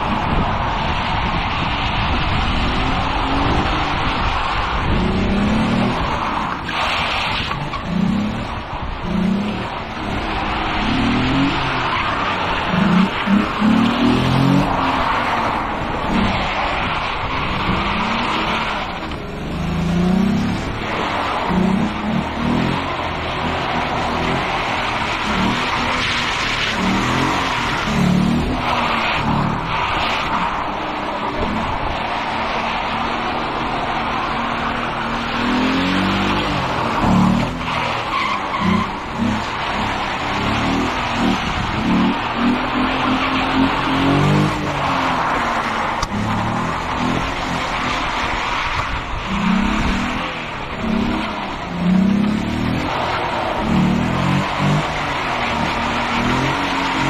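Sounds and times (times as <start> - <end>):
car engine revving: 0.0 - 57.0
tyres squealing and skidding: 0.0 - 57.0.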